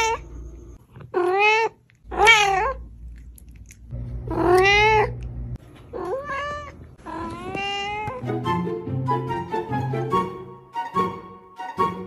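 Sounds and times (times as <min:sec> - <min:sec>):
cat meowing: 0:01.1 - 0:02.8, 0:04.3 - 0:05.1, 0:05.9 - 0:08.2.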